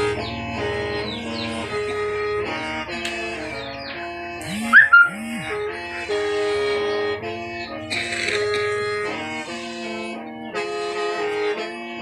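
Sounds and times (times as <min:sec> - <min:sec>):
mouth organ chords: 0:00.0 - 0:12.0.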